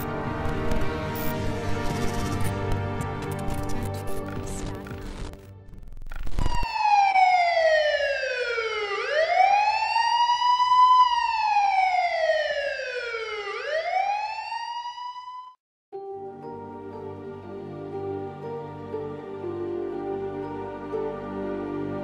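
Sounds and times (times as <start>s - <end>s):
intro music: 0.0s - 6.6s
siren wailing: 6.3s - 15.6s.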